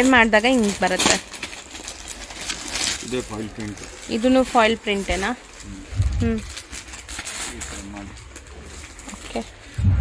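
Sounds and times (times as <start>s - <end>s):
low thump: 9.8s - 10.0s.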